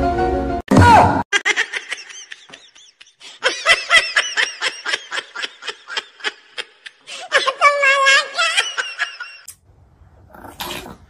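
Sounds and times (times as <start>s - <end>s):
person giggling: 1.3s - 9.5s.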